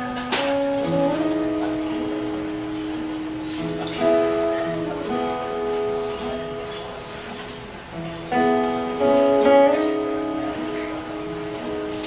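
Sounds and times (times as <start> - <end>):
acoustic guitars strumming: 0.0 - 12.0.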